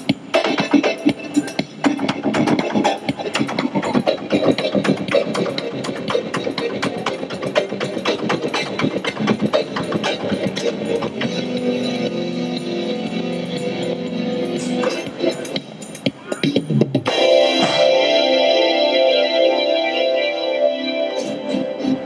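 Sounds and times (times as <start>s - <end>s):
quick percussive beat: 0.0s - 11.8s
electronic keyboard synth-pop: 0.0s - 22.0s.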